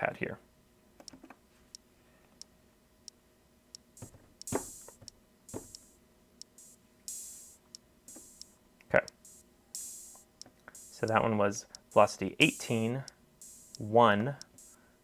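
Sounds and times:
steady soft tick: 2.4 - 14.8
drum sample hits: 4.0 - 5.9, 6.6 - 8.5, 9.1 - 10.2, 10.8 - 11.2, 11.8 - 14.8.

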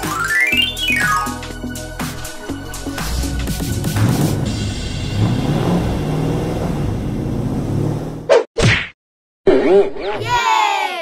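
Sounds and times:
wavering falling pitch glides: 0.0 - 1.5
whooshing hits: 3.0 - 7.2
low steady rumble: 3.8 - 8.2.

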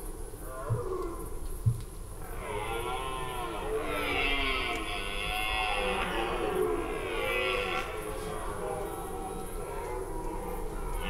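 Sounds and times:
deer stags roaring: 2.2 - 11.0.

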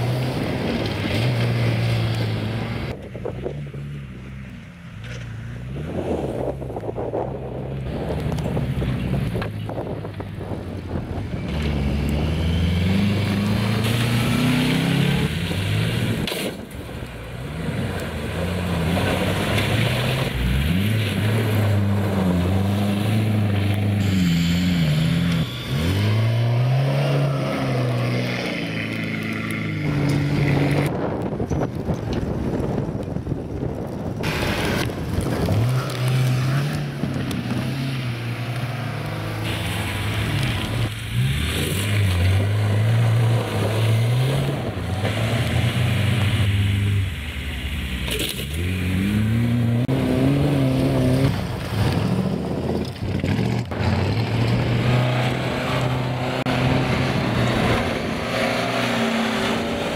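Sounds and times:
car engines revving: 0.0 - 59.9
gravel and tyre noise: 0.0 - 59.9.

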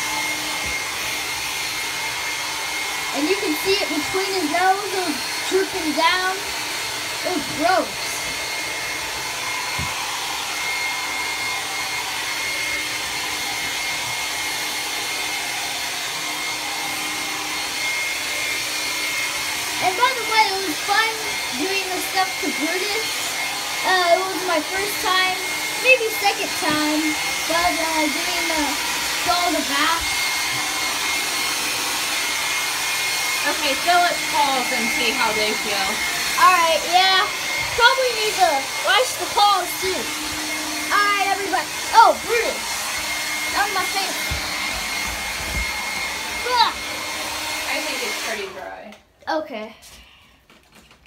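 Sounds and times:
hair dryer running: 0.0 - 49.2.

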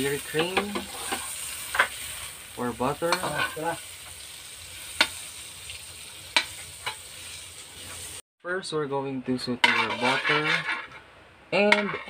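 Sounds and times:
butter sizzling in a wok: 0.0 - 8.2.

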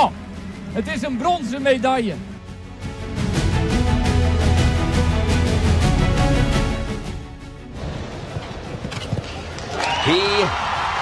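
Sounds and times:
crowd cheering: 9.4 - 11.0.

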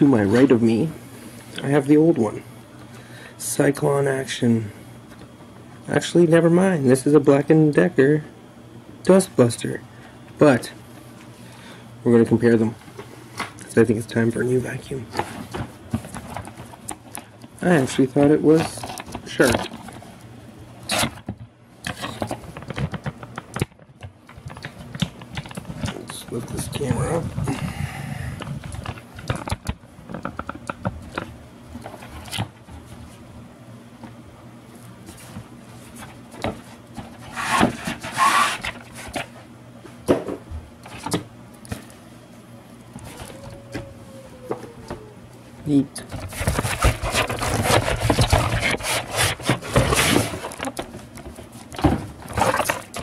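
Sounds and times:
cardboard packaging rustling: 14.7 - 20.1, 21.8 - 27.6, 46.1 - 53.0.

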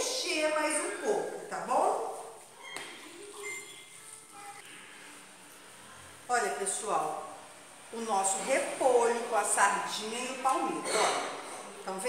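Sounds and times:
woman talking: 0.0 - 2.3, 6.3 - 12.0.

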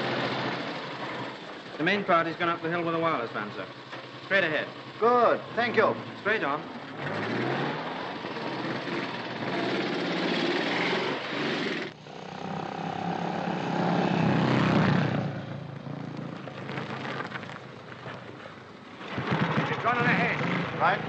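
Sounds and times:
motorcycle engines running: 0.0 - 21.0.

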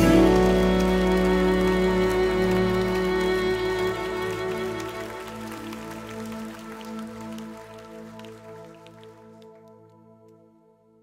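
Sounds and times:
band playing held notes: 0.0 - 5.2
bowed cello: 0.0 - 6.5.

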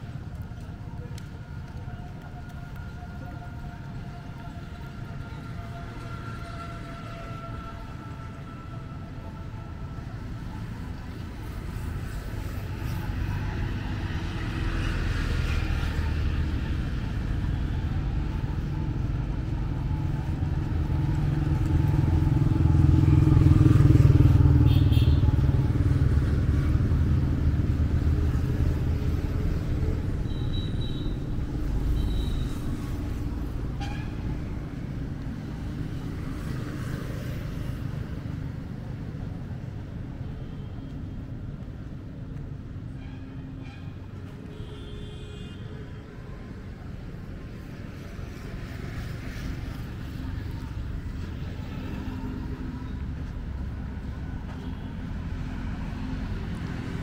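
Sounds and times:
highway traffic: 0.0 - 57.0.

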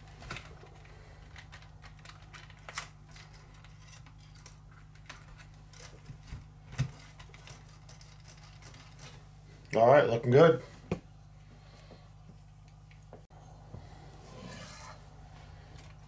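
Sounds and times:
steady low hum: 0.0 - 16.0.

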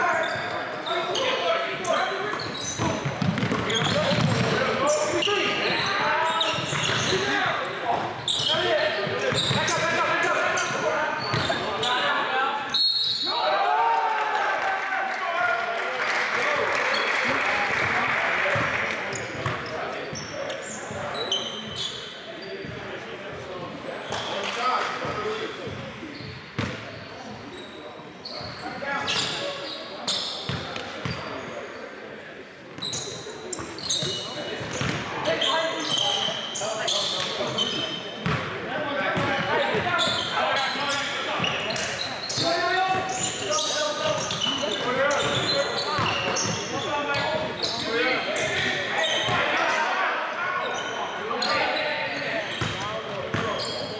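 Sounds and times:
sneaker squeaks: 0.0 - 13.4, 19.1 - 22.9, 23.6 - 24.5, 25.1 - 32.0, 32.7 - 49.8, 50.5 - 53.9.

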